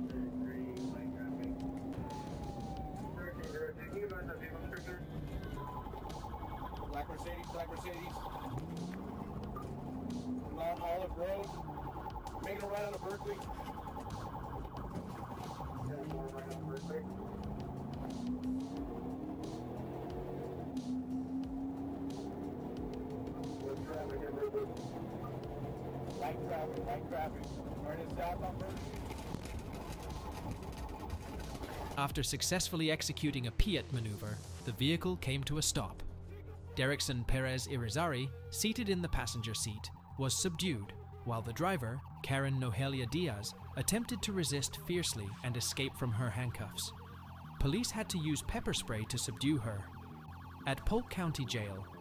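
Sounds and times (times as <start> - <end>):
voices: 0.0 - 14.4, 15.2 - 17.5, 23.4 - 25.4, 26.0 - 29.4
police siren warbling: 0.0 - 32.5, 37.0 - 52.0.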